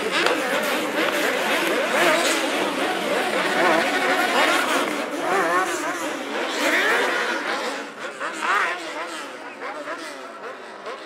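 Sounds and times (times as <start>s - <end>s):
large crowd noise: 0.0s - 11.0s
motorcycle engines revving: 0.0s - 11.0s.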